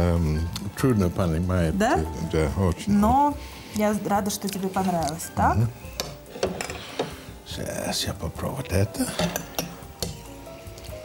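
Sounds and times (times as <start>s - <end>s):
faint background music: 0.0s - 11.0s
fork scraping a plate: 6.1s - 7.4s.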